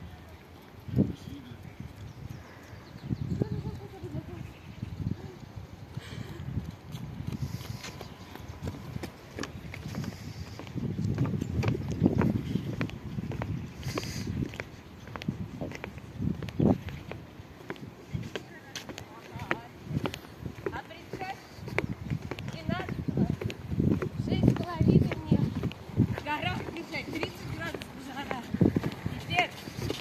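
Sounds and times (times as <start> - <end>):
voices: 0.0 - 5.7, 18.2 - 30.0
footsteps: 6.8 - 30.0.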